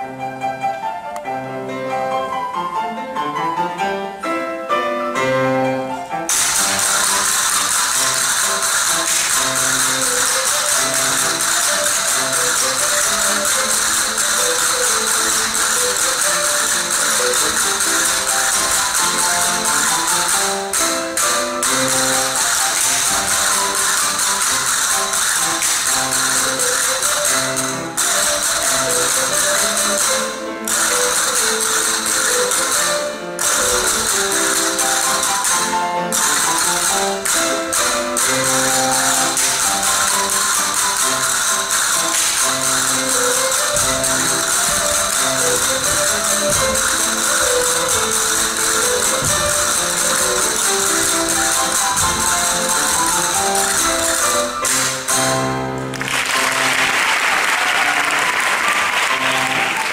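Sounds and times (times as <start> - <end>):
folk dance music: 0.0 - 59.9.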